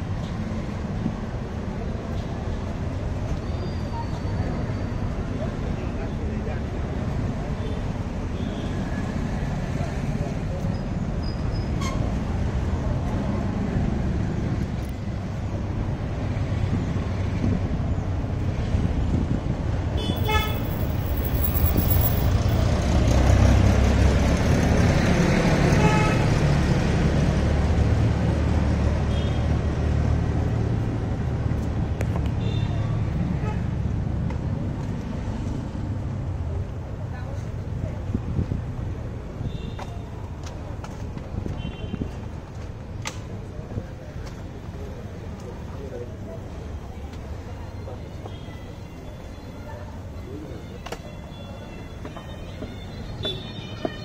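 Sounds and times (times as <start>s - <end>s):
vehicle engines passing: 0.0s - 54.0s
vehicle horn toots: 20.0s - 20.7s, 53.2s - 54.0s.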